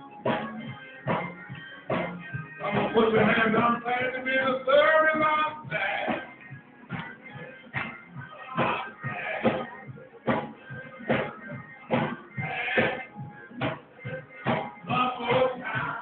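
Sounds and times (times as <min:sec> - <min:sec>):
church praise music: 0:00.0 - 0:16.0
sharp steady beat: 0:00.2 - 0:16.0.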